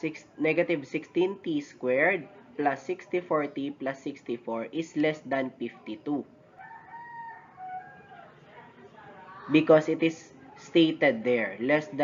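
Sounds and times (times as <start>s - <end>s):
faint distant animal call: 6.4s - 9.5s.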